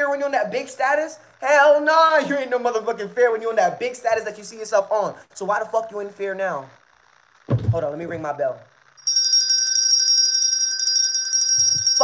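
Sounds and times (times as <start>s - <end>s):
hand bell ringing rapidly: 9.0s - 12.0s.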